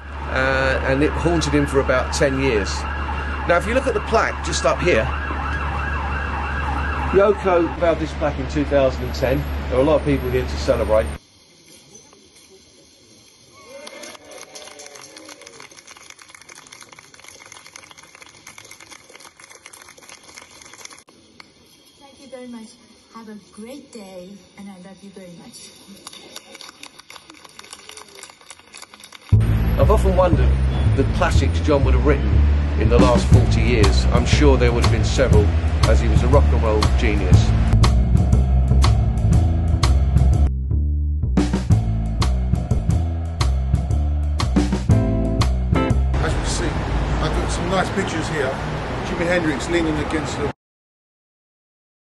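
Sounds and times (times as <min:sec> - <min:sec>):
emergency siren yelping: 0:00.0 - 0:09.4
crowd applauding: 0:13.8 - 0:21.0, 0:26.4 - 0:29.4.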